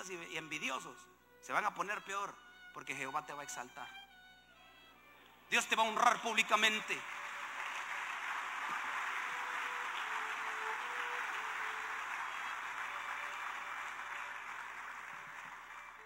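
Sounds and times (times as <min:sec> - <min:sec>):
faint violin playing: 0:00.0 - 0:07.7, 0:09.0 - 0:16.0
congregation applauding: 0:05.6 - 0:16.0.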